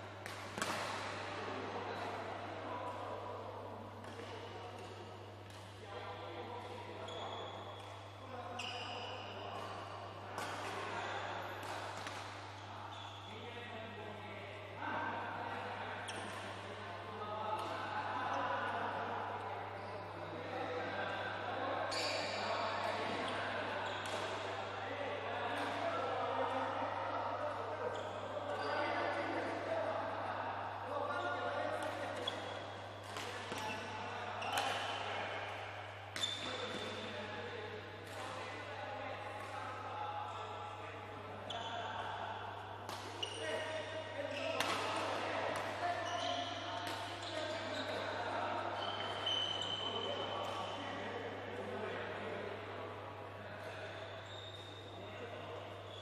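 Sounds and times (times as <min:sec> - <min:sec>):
racket hitting shuttlecock: 0:00.2 - 0:01.2, 0:34.5 - 0:35.1, 0:44.6 - 0:45.8.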